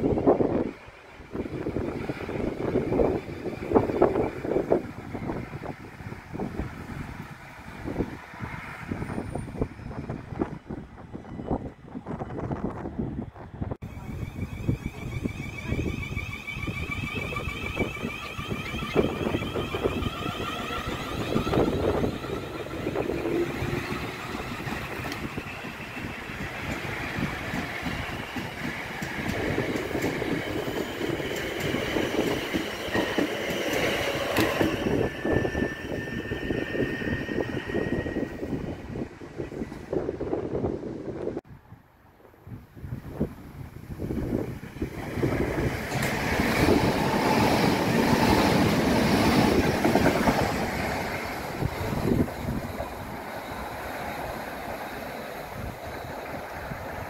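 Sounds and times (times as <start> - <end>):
electric train whine: 0.0 - 41.4, 43.9 - 57.0
train wheels clattering on track: 16.6 - 35.6, 44.5 - 57.0.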